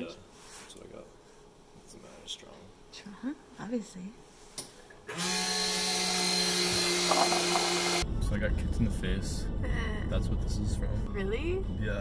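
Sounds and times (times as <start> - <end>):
coffee machine whirring hum: 5.0 - 8.1.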